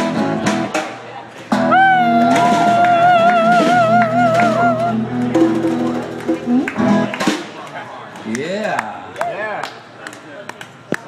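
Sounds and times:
blues guitars playing: 0.0 - 0.8, 1.5 - 7.4.

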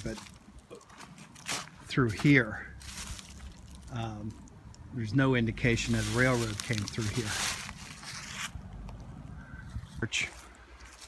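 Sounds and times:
scraping rustle: 5.6 - 8.6.

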